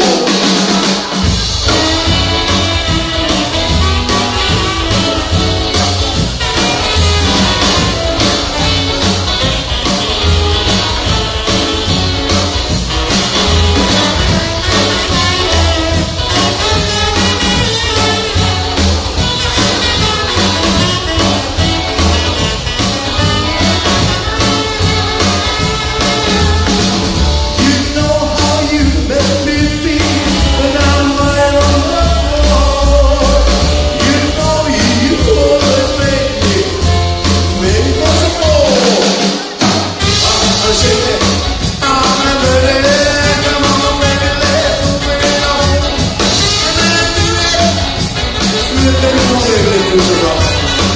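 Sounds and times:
drum hits: 0:00.0 - 0:50.9
rockabilly band playing live: 0:00.0 - 0:50.9.

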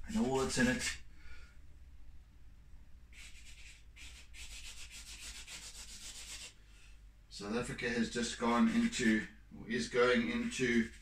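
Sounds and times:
scratchy strokes on paper: 0:03.2 - 0:06.6.

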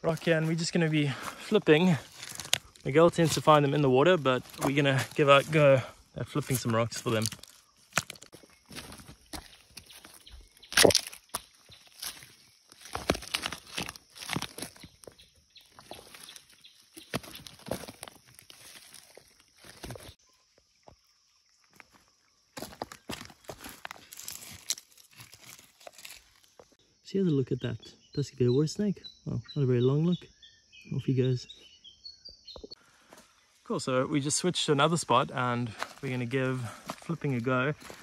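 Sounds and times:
slate rocks clacking and scraping: 0:01.2 - 0:15.2.

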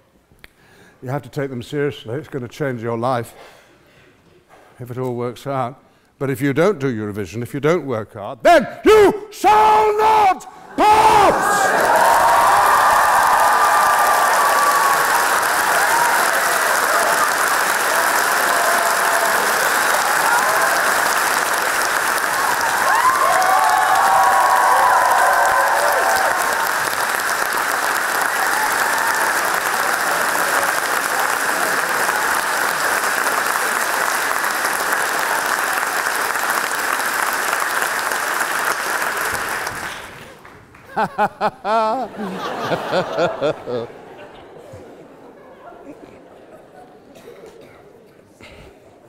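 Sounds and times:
crowd cheering and whooping: 0:10.8 - 0:33.3
large audience applauding: 0:11.1 - 0:43.9.

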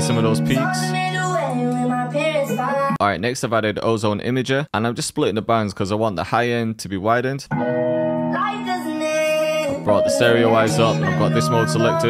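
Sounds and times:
sung melody: 0:00.0 - 0:03.0, 0:07.5 - 0:12.0
held backing note: 0:09.6 - 0:12.0.

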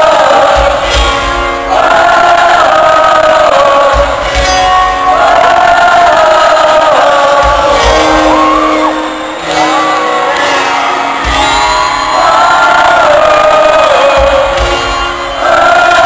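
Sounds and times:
sung vocals: 0:00.0 - 0:09.7, 0:12.0 - 0:16.0
crowd shouting and singing along: 0:00.0 - 0:16.0
live rock band playing a ballad: 0:00.0 - 0:16.0.

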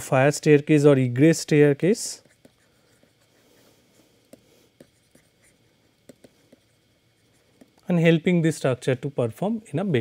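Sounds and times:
stylus tapping on pen tablet: 0:06.0 - 0:06.7.

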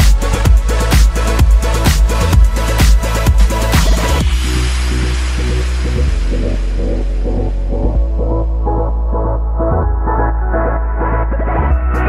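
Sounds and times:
electronic music with deep bass: 0:00.0 - 0:12.0.

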